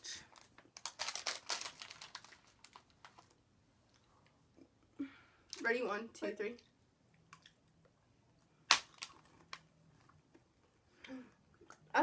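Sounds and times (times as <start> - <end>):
candy crunching while chewing: 0.3 - 4.1, 8.7 - 10.5.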